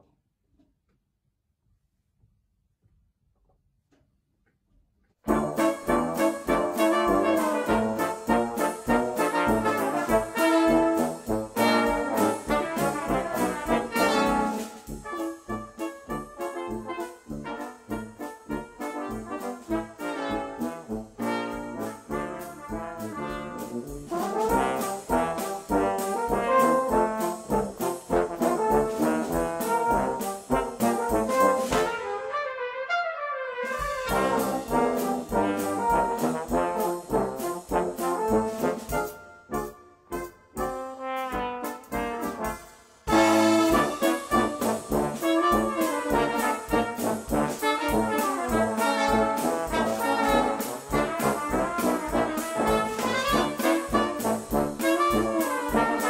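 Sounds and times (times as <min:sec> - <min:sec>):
drum kit: 0:05.2 - 0:32.3, 0:33.6 - 0:56.0
brass band playing jazzy tune: 0:05.3 - 0:56.0.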